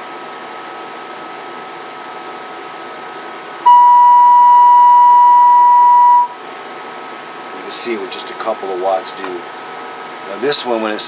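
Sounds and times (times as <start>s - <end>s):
cooling fan with faint whine: 0.0s - 11.0s
loud steady test tone: 3.6s - 6.4s.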